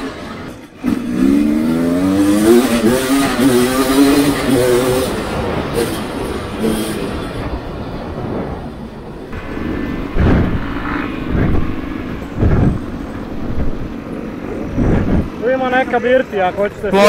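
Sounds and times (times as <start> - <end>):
wind rumble on microphone: 5.0 - 15.7
dirt bike engine running: 9.3 - 17.0.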